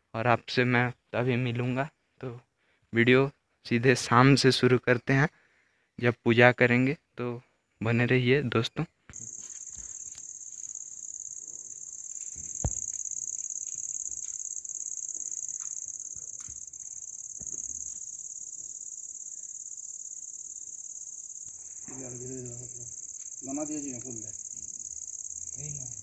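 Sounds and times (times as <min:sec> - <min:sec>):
crickets chirping: 0:09.1 - 0:26.0.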